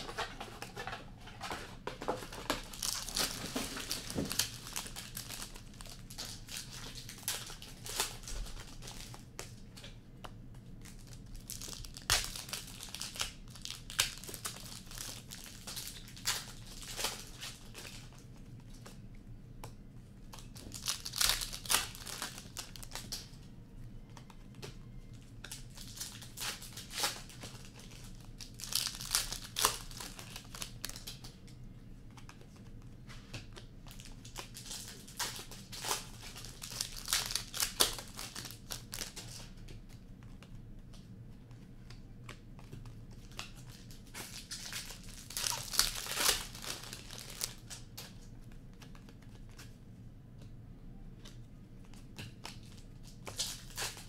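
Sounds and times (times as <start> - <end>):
card pack wrappers crinkling: 0.0 - 9.6, 10.8 - 18.9, 20.3 - 23.4, 25.4 - 31.4, 33.6 - 40.4, 42.3 - 49.7, 52.3 - 54.0.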